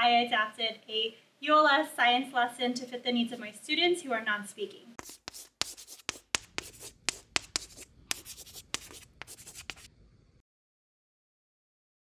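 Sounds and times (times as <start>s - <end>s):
pen scratching writing strokes: 5.0s - 9.9s.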